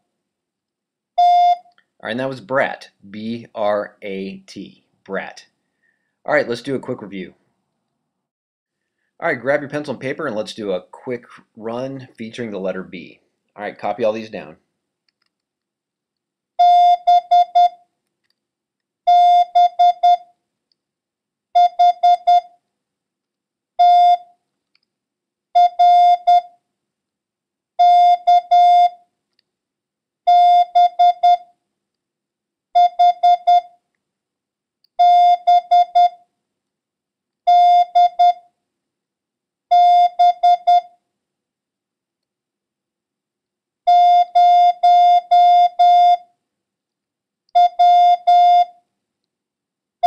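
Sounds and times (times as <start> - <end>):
morse code beeps: 1.2 - 1.6, 16.6 - 17.8, 19.1 - 20.2, 21.6 - 22.5, 23.8 - 24.3, 25.6 - 26.5, 27.8 - 29.0, 30.3 - 31.4, 32.8 - 33.7, 35.0 - 36.2, 37.5 - 38.4, 39.7 - 40.9, 43.9 - 46.2, 47.6 - 48.7.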